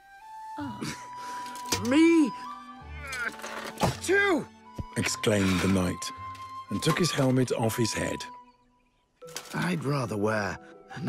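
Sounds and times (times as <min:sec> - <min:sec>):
film score with held tones: 0:00.0 - 0:11.0.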